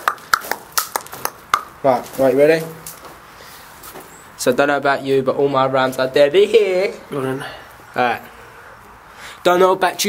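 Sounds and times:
man speaking: 0:01.8 - 0:02.9, 0:04.4 - 0:08.5, 0:09.4 - 0:10.0.

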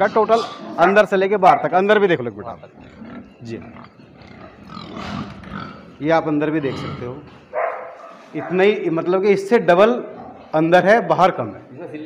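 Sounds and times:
pigs grunting: 0:00.0 - 0:08.9, 0:09.7 - 0:10.8.

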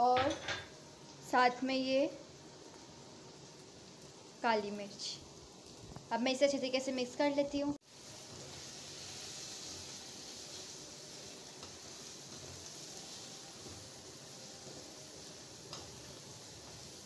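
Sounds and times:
vegetables sizzling in a pan: 0:00.0 - 0:17.0.

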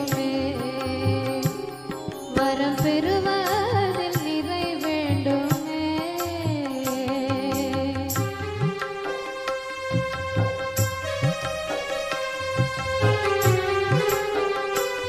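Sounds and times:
devotional song melody: 0:00.0 - 0:15.0
low drum beat: 0:09.9 - 0:11.7.

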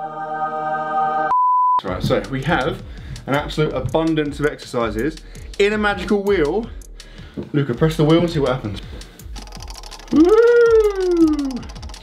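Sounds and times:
high voice drawn-out ooh: 0:10.1 - 0:11.7.

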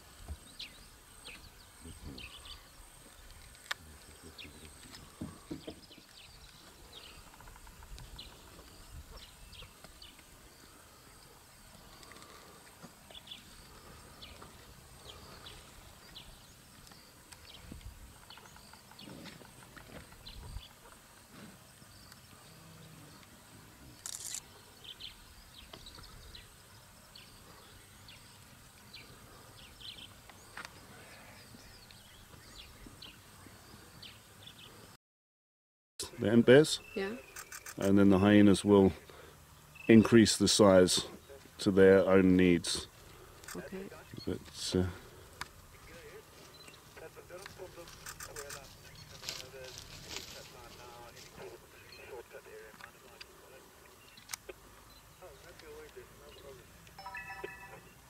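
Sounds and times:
high chirps: 0:57.0 - 0:58.0
steady thin high tone: 0:57.0 - 0:58.0.

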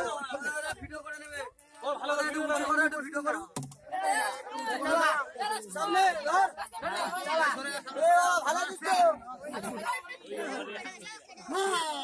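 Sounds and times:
people talking over one another: 0:00.0 - 0:12.0
loud shout: 0:03.9 - 0:09.1, 0:11.4 - 0:12.0.

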